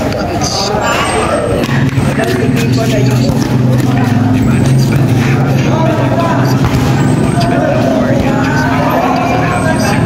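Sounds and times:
players calling out: 0.0s - 10.0s.

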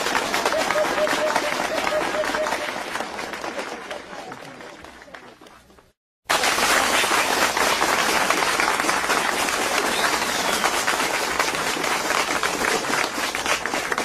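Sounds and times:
audience applauding: 0.0s - 5.7s, 6.3s - 14.0s.

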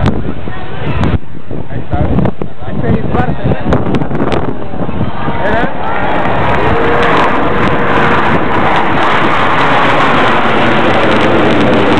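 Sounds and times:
jets roaring overhead: 3.3s - 11.9s.

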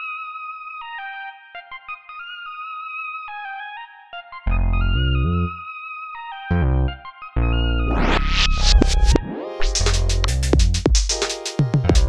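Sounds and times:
sawtooth synth lead with chords: 4.4s - 5.6s, 6.5s - 10.6s.

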